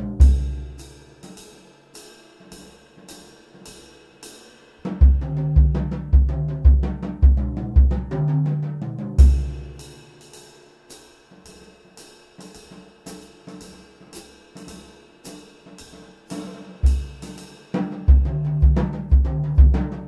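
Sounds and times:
cymbal strokes: 0.0 - 4.9, 9.2 - 17.8
snare and tom strokes: 0.0 - 20.0.

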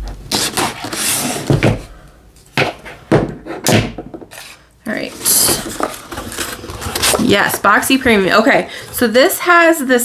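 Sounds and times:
cardboard box scraping rustle: 0.3 - 1.6, 4.3 - 7.7
cardboard knocks and thumps: 1.4 - 1.9, 2.6 - 4.3.

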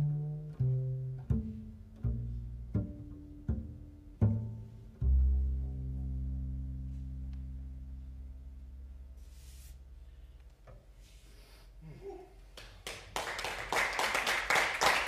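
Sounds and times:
plucked double bass note: 0.0 - 9.9
audience clapping: 12.5 - 15.0.

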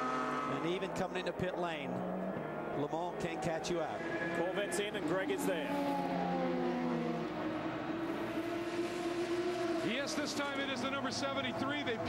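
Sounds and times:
racing car engine: 0.0 - 12.0.

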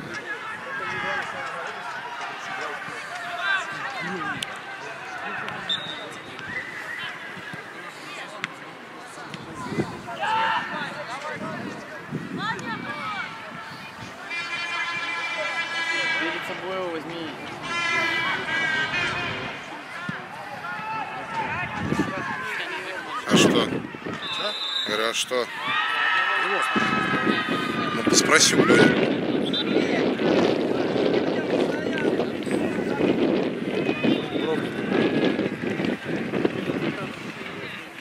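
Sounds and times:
players shouting: 0.0 - 8.6, 9.2 - 38.0
high whistle tone: 5.7 - 7.2, 24.2 - 25.0.

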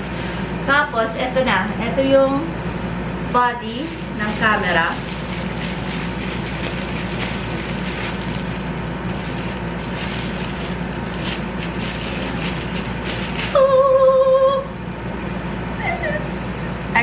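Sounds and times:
bubble wrap rustling and crinkling: 0.0 - 0.5, 3.6 - 13.8
steady background hum: 0.0 - 17.0.

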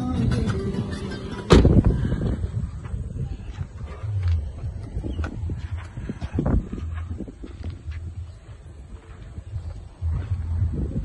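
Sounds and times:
wind rumble on microphone: 0.0 - 11.0
boot lid thump: 1.5 - 1.8
car door shutting: 1.5 - 1.9.

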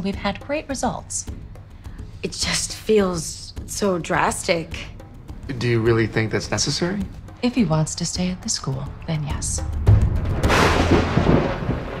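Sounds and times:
low thunder rumble: 9.7 - 12.0
thunder crack: 9.8 - 12.0
falling rain: 10.3 - 12.0.

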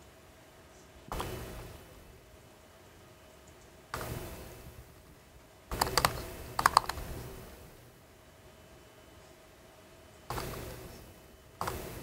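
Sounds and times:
keyboard keys clicking: 5.8 - 7.0.

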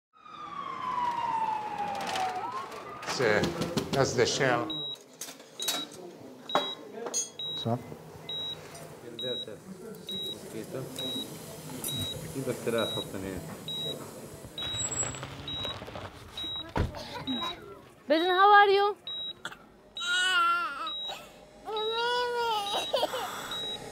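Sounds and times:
siren wailing: 0.1 - 3.4
patient monitor beeping: 4.6 - 17.7, 19.0 - 23.9.

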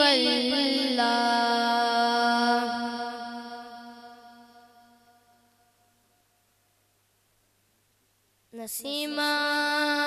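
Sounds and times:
boy singing long note: 0.0 - 5.2, 8.6 - 10.0.

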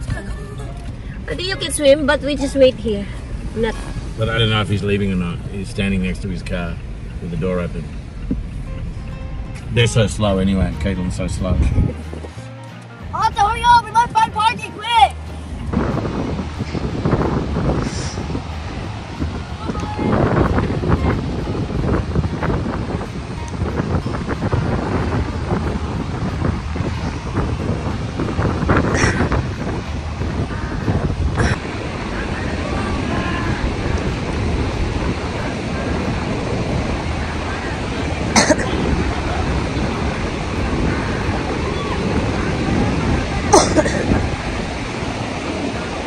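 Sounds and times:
ocean surf: 0.0 - 46.0
wind rumbling on microphone: 0.0 - 46.0
indistinct voices: 30.3 - 46.0.

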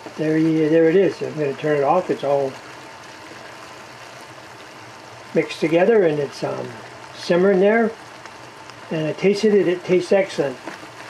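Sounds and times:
sauce simmering in a frying pan: 0.0 - 11.0.

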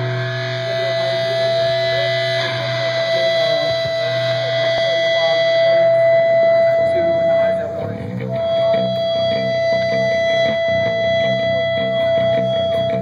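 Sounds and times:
distorted electric guitar tone: 0.0 - 13.0
low amplifier hum: 0.0 - 13.0.

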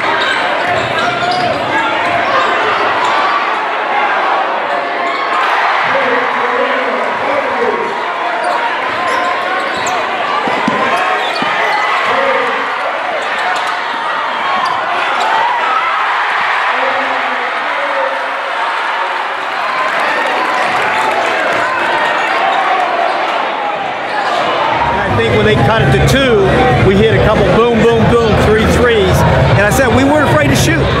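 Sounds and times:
din of spectators' voices: 0.0 - 31.0.

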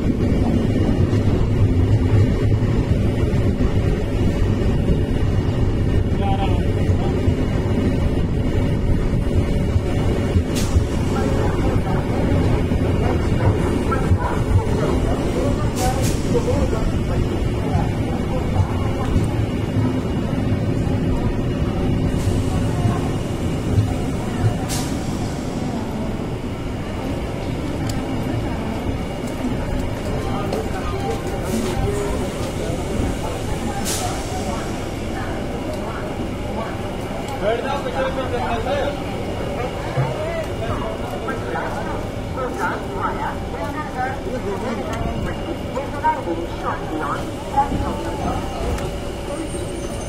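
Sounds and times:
train rumbling: 0.0 - 50.0
people talking: 4.7 - 50.0.

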